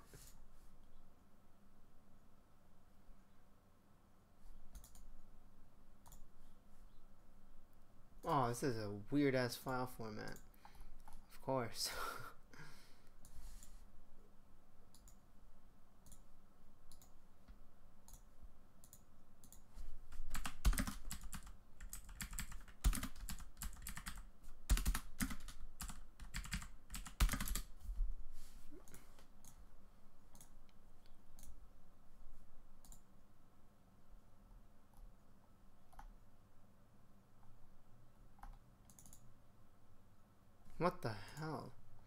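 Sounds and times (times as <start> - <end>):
typing on computer keyboard: 4.7 - 5.1, 18.8 - 27.8, 38.4 - 39.2.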